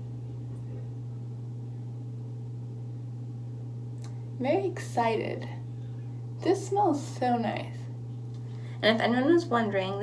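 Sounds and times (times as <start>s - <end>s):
steady low hum with hiss: 0.0s - 10.0s.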